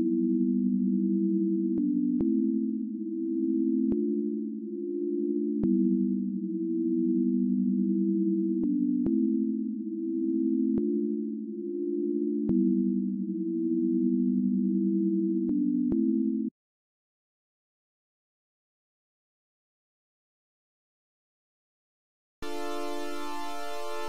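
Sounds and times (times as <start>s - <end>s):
synth pad chords: 22.4s - 24.0s.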